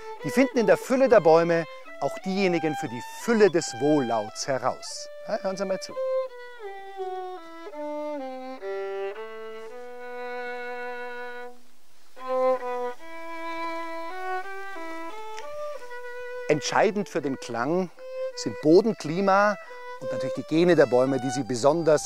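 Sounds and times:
solo violin melody: 0.0 - 22.0.

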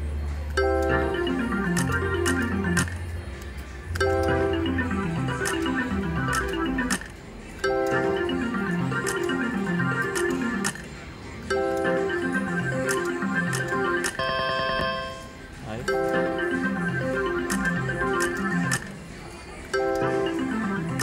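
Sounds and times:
slot machine reel-spin music: 0.5 - 21.0.

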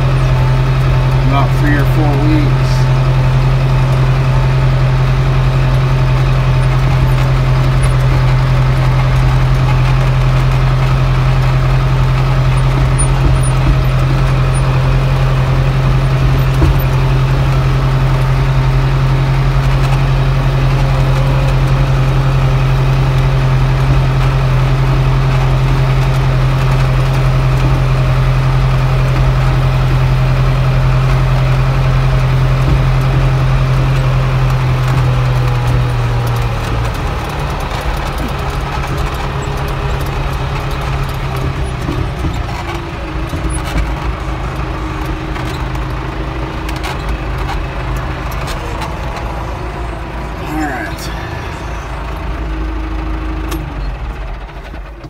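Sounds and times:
tractor engine running: 0.0 - 55.0.

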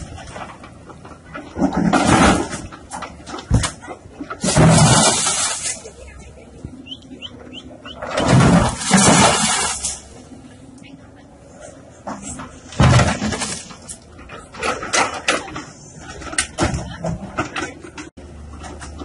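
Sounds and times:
concrete blocks crashing down: 1.5 - 2.7, 4.4 - 5.8, 8.2 - 10.0.

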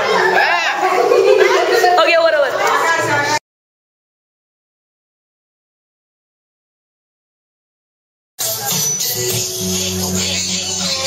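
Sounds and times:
young voices chattering: 0.0 - 3.4.

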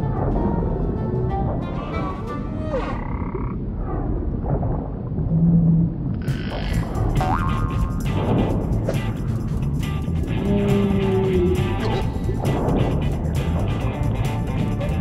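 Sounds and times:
cartoon frog croaking: 2.8 - 3.6, 6.2 - 8.1, 10.6 - 12.7
dense low rumble: 3.3 - 15.0.

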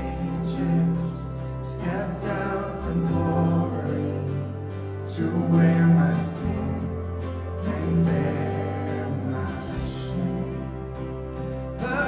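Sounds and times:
acoustic guitar: 0.0 - 12.0
people singing slow song: 0.0 - 12.0.

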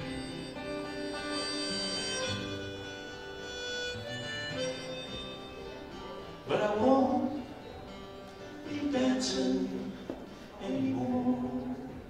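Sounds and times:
harmonica playing held notes: 0.0 - 6.6
acoustic guitar accompaniment: 0.0 - 12.0.

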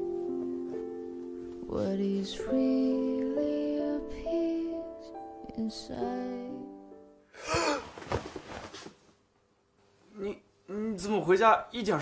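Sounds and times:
person gasping: 7.3 - 8.0.

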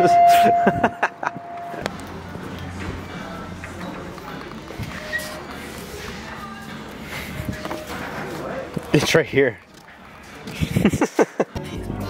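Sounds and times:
steady electronic beep: 0.0 - 1.8.

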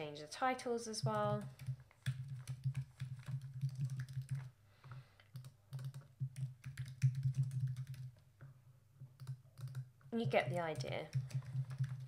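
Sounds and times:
typing on computer keyboard: 1.0 - 4.6, 5.2 - 8.2, 9.0 - 12.0.

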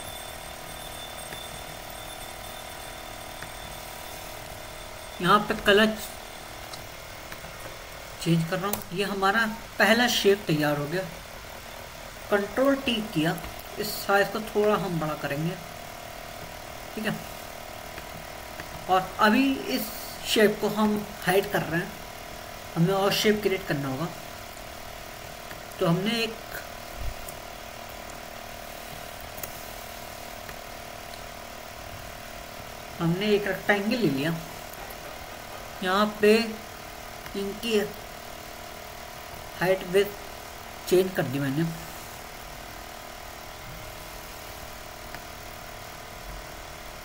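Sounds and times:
steady background hiss: 0.0 - 47.0.

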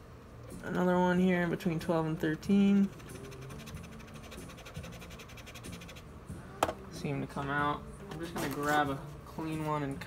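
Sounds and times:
cotton swab scratching: 2.8 - 6.1.

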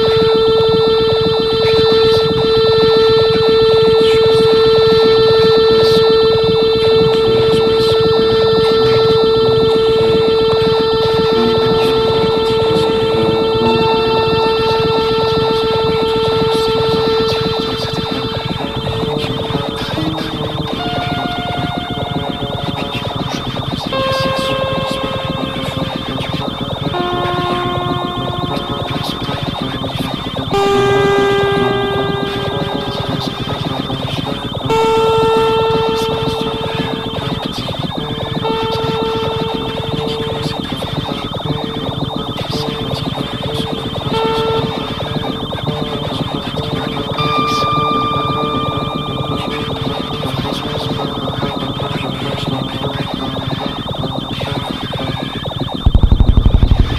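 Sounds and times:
held electronic tones: 0.0 - 56.9
fast clicking texture: 55.8 - 56.9.

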